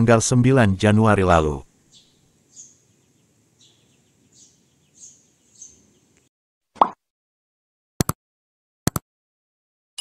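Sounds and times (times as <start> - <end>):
faint bird chirps: 1.6 - 6.3.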